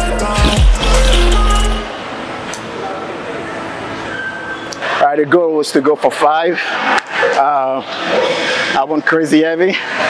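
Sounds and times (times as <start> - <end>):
music with heavy bass: 0.0 - 1.9.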